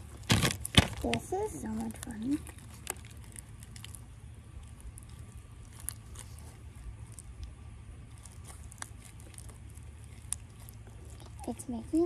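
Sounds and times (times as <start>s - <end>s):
slime crackles and clicks: 0.0s - 11.5s
steady low rumble: 0.0s - 12.0s.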